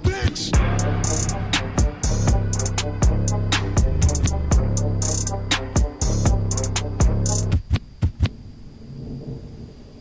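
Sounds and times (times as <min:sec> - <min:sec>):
low rumble: 0:00.0 - 0:07.5, 0:08.3 - 0:10.0
sharp hits: 0:00.0 - 0:07.7.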